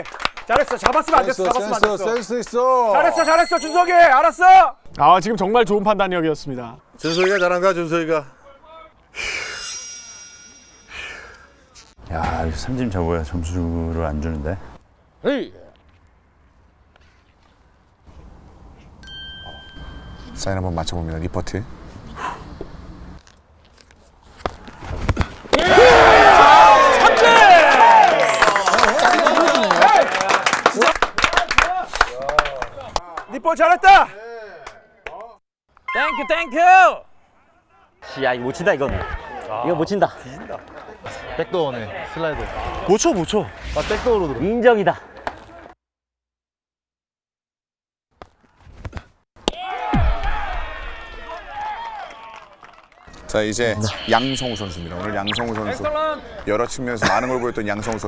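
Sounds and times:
crowd shouting and cheering: 25.5s - 30.5s, 49.4s - 56.5s
men shouting and cheering: 25.5s - 34.7s, 49.5s - 52.5s.

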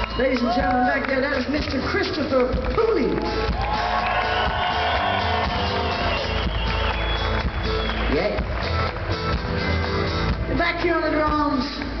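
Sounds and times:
live rock band playing: 0.0s - 12.0s.

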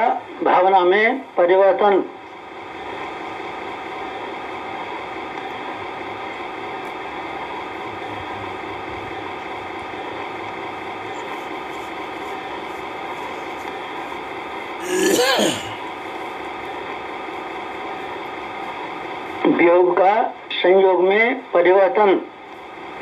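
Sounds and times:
machine hum with hiss: 2.2s - 19.5s.

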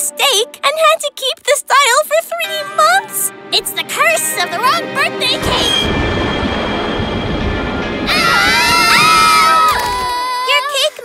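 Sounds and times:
music: 0.0s - 11.0s
dramatic low rumble: 3.3s - 10.1s.

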